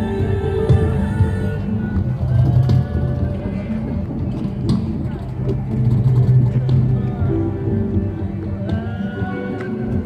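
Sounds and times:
electronic music from loudspeaker: 0:00.0 - 0:10.0
people's voices: 0:00.0 - 0:10.0.

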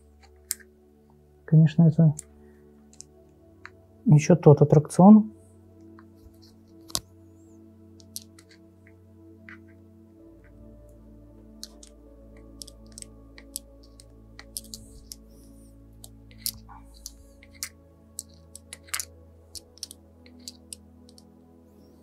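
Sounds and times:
quiet ambient music: 0:00.0 - 0:22.0
clicks of small bicycle parts: 0:08.0 - 0:08.6, 0:12.6 - 0:15.2, 0:16.0 - 0:21.3.

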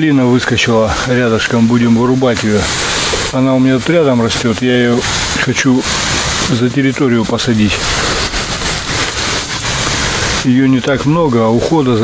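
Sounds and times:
sprayer nozzle hissing: 0:00.9 - 0:12.0.

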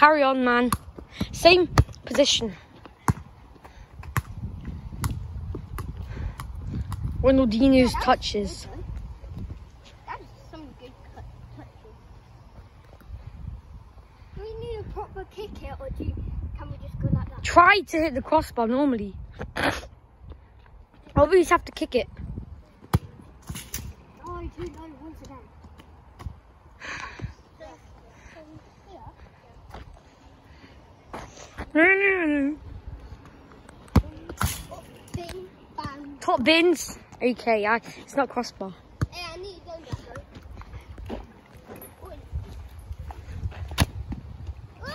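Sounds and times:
football touches on asphalt: 0:00.0 - 0:07.4, 0:20.3 - 0:30.2, 0:32.8 - 0:44.7
football kicked: 0:43.6 - 0:44.2.

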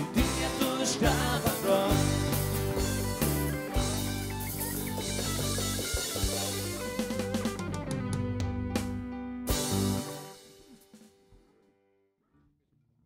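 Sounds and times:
drum hits: 0:00.0 - 0:08.1
instrumental rock band playing: 0:00.0 - 0:11.5.

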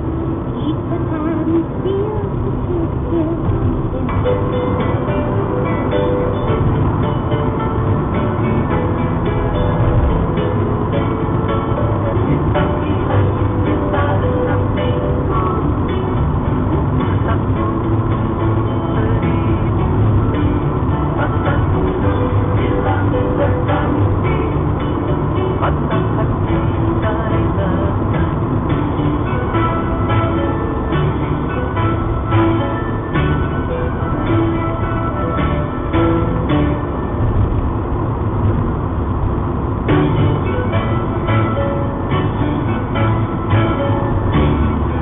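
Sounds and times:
music from car stereo: 0:00.0 - 0:45.0
road and engine noise: 0:00.0 - 0:45.0.

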